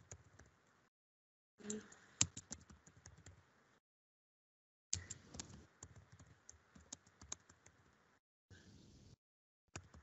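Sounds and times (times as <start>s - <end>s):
typing on computer keyboard: 0.0s - 0.6s, 1.6s - 3.4s, 5.0s - 8.0s, 9.7s - 10.0s.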